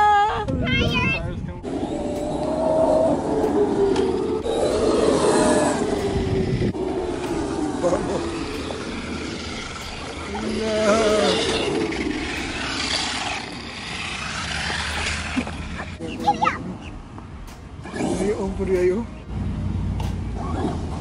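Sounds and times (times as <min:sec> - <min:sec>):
child's voice: 0:00.0 - 0:01.3, 0:16.0 - 0:16.8
tyre and drivetrain noise: 0:00.7 - 0:21.0
electric motor whining: 0:01.6 - 0:16.0.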